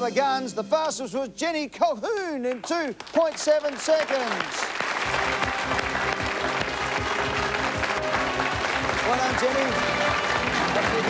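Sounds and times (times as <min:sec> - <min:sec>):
studio audience applause: 0:02.6 - 0:11.0
game show music sting: 0:05.0 - 0:11.0.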